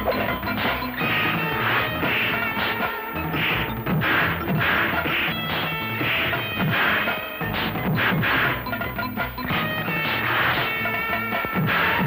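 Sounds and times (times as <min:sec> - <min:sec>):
film background score: 0:00.0 - 0:12.0
punch hit effects: 0:03.4 - 0:08.6.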